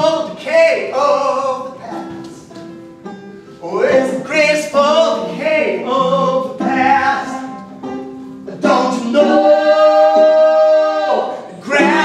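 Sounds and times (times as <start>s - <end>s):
banjo: 1.4s - 12.0s
person singing long notes: 3.6s - 12.0s.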